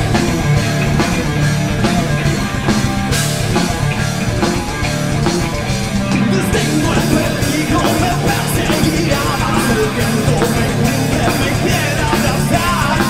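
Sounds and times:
drum kit: 0:00.0 - 0:13.0
electric guitars: 0:00.0 - 0:13.0.

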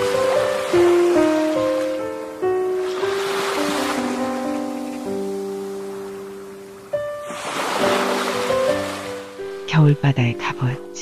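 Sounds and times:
sea waves: 0:00.0 - 0:10.4
gentle instrumental music: 0:00.0 - 0:11.0.

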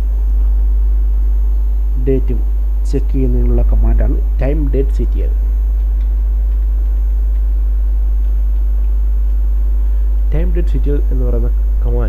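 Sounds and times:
faint high-pitched whine: 0:00.0 - 0:12.0
loud electrical hum: 0:00.0 - 0:12.0.

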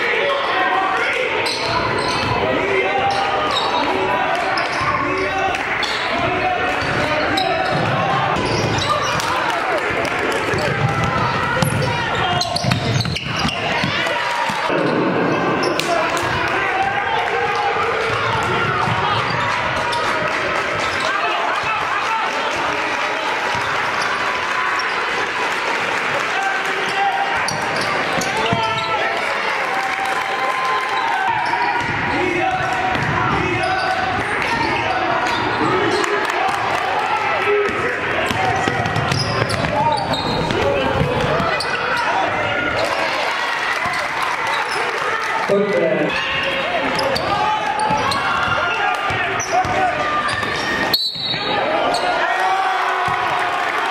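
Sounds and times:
people shouting and talking: 0:00.0 - 0:53.9
sneakers squeaking: 0:01.4 - 0:09.5, 0:10.4 - 0:16.3, 0:18.1 - 0:21.4, 0:23.5 - 0:25.1, 0:26.8 - 0:29.2, 0:38.2 - 0:42.8, 0:43.8 - 0:45.0, 0:46.1 - 0:52.2.

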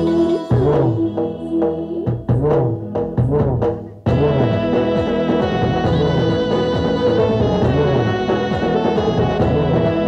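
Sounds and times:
drum-driven dance music: 0:00.0 - 0:10.0.

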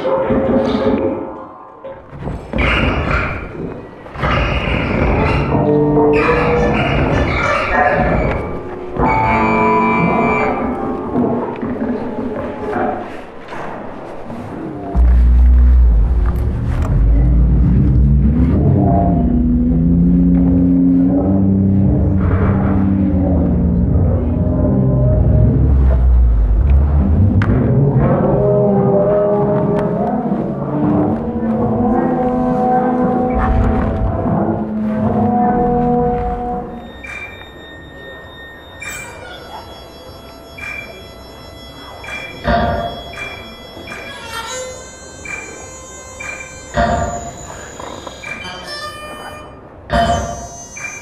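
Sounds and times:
layered synthesized tones: 0:14.8 - 0:28.0, 0:36.6 - 0:51.0
deep bass drone: 0:14.9 - 0:37.0.

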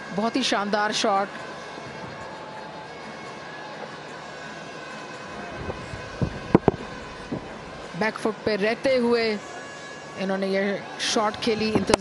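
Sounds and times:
low thuds: 0:05.6 - 0:07.9.

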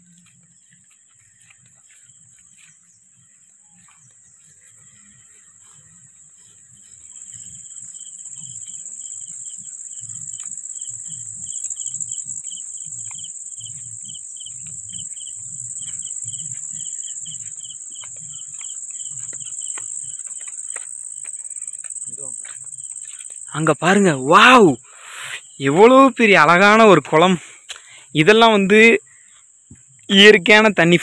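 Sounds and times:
footsteps on leaf litter: 0:00.0 - 0:24.1
insect chirping: 0:00.0 - 0:31.0
insects shrill drone: 0:04.0 - 0:30.9.

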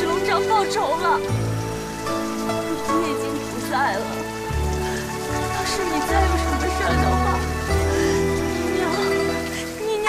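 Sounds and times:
slow background music: 0:00.0 - 0:10.0
steady rain: 0:00.0 - 0:10.0.

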